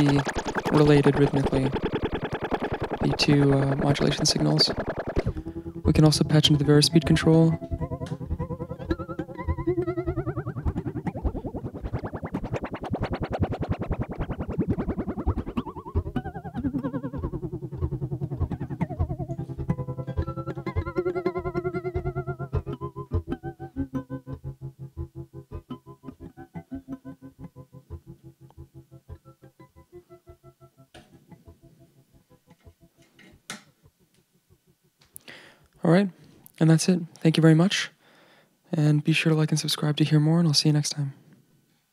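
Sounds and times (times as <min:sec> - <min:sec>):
pulsing wobbling synth loop: 0:00.0 - 0:22.5.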